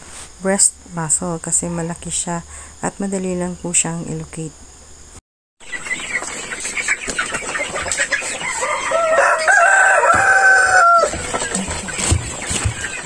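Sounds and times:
chickens clucking: 0:05.6 - 0:13.0
rooster crowing: 0:08.4 - 0:11.4.

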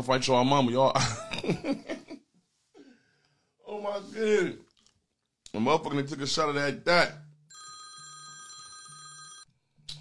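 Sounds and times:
electronic phone ringtone: 0:07.5 - 0:09.5.

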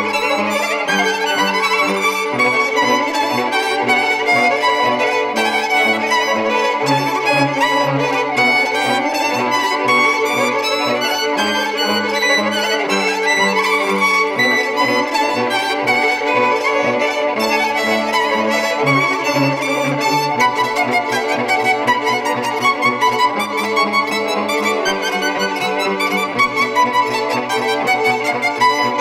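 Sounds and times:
violins bowed and plucked: 0:00.0 - 0:29.0.

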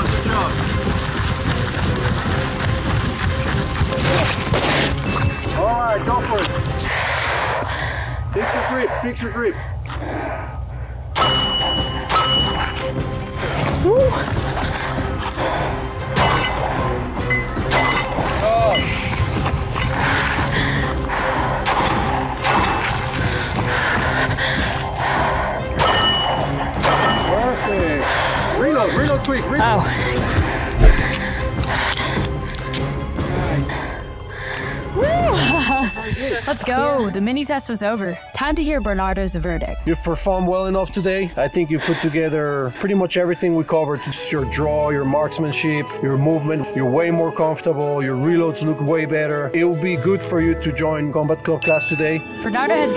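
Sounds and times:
background music: 0:00.0 - 0:52.9
steel plate target ringing: 0:11.2 - 0:12.8.

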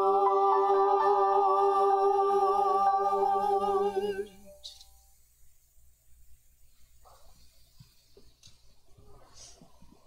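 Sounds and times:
vocal ensemble holding a chord: 0:00.0 - 0:04.8.

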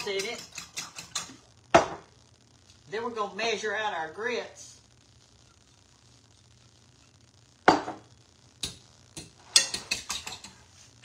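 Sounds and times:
metal utensil clicking against pan: 0:00.0 - 0:01.3.

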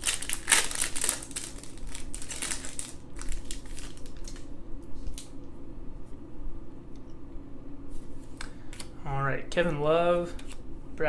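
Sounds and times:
foil wrapper tearing and crinkling: 0:00.0 - 0:05.3.

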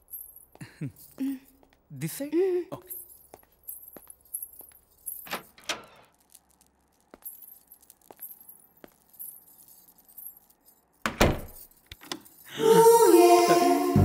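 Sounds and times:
jewellery jingling: 0:00.0 - 0:12.6.

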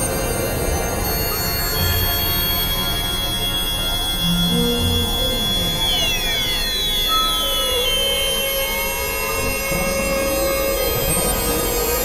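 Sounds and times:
high tones sliding downward: 0:00.0 - 0:12.0
noisy hiss: 0:00.0 - 0:12.0
sustained synthesizer drone: 0:00.0 - 0:12.0.

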